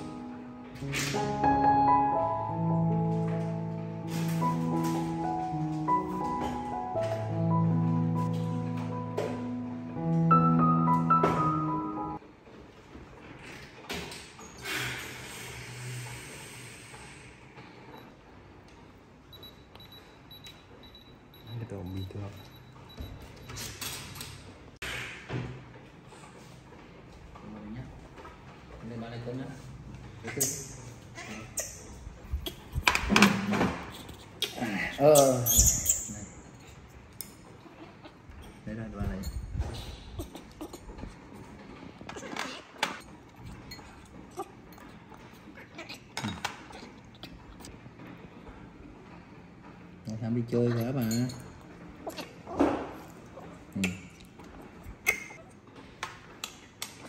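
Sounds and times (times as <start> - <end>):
thermometer beeping: 19.3 - 23.6
utensils clinking against bowl: 30.2 - 41.2, 50.6 - 52.4.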